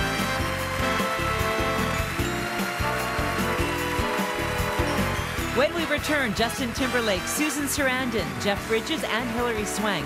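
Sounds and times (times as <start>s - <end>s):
audience applause: 0.0s - 5.6s
band music: 0.0s - 10.0s.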